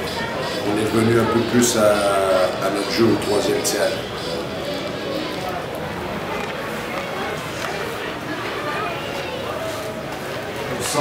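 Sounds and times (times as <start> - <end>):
murmur of crowd chatter: 0.0 - 11.0.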